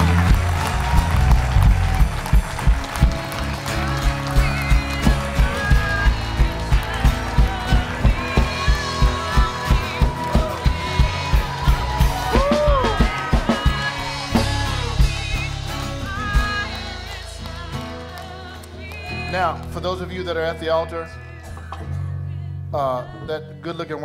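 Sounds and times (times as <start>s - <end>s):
steady drum beat: 0.0s - 17.7s
sustained keyboard or vocal lines: 12.6s - 24.0s.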